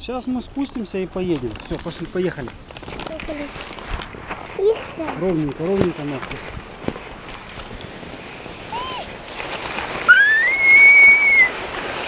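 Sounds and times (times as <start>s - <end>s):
skis scraping over snow: 0.3s - 12.0s.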